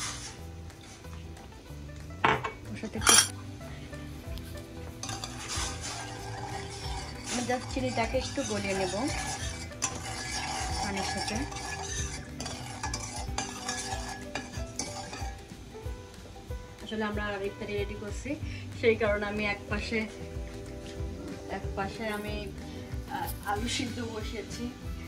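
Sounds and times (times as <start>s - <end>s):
scraping in a pan: 0.0s - 1.3s, 2.4s - 3.4s, 4.2s - 15.6s
scraper clanking on metal pan: 2.3s - 3.3s, 4.9s - 15.5s.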